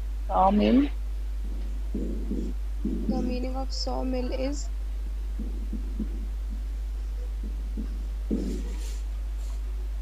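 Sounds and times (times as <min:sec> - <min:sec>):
faint muffled low sounds: 0:00.0 - 0:10.0
low electrical hum: 0:00.0 - 0:10.0
marker scratching on whiteboard: 0:07.2 - 0:09.6.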